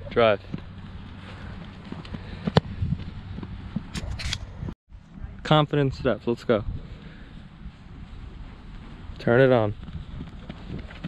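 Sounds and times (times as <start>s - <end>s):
foot kicking football: 0.4s - 4.2s.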